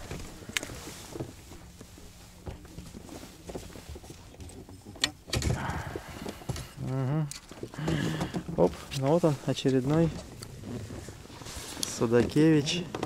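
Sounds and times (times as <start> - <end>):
fish handling noise: 0.0 - 13.0.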